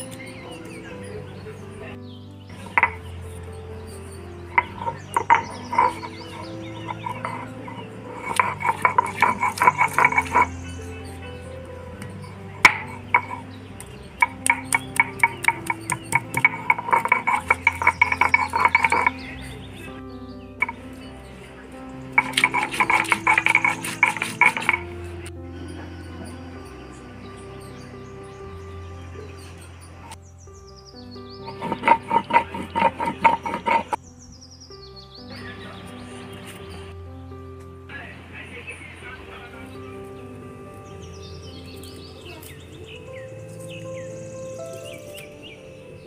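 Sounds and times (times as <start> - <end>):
background music: 0.0 - 46.0
stone roller clacking on grinding stone: 2.6 - 3.2, 4.5 - 10.8, 12.0 - 19.6, 20.6 - 20.8, 22.2 - 25.3, 31.5 - 34.0.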